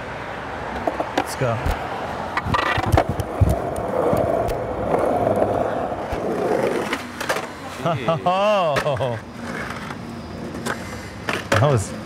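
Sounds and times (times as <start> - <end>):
skateboard wheels rolling on pavement: 0.0 - 12.0
skateboard tail popping: 0.8 - 7.5.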